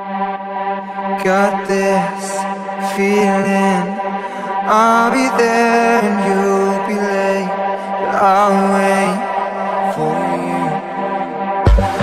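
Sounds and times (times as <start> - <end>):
low electronic drone: 0.0 - 12.0
chant-like vocal: 0.8 - 12.0.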